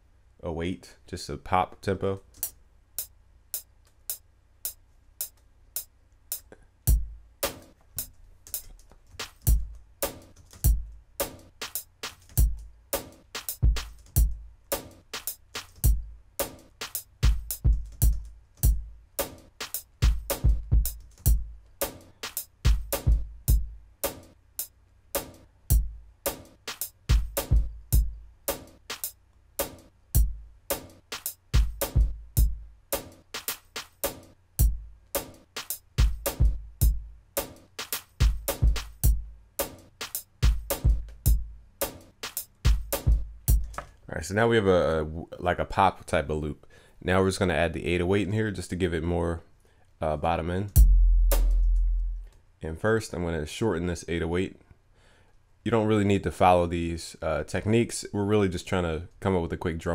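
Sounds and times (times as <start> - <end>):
kick drum and snare hits: 6.9 - 7.7, 9.2 - 22.0, 22.7 - 24.2, 27.1 - 28.1, 31.6 - 32.6, 36.0 - 39.2, 40.4 - 42.0, 42.7 - 43.9, 50.8 - 52.3
deep kick drum: 50.8 - 52.3.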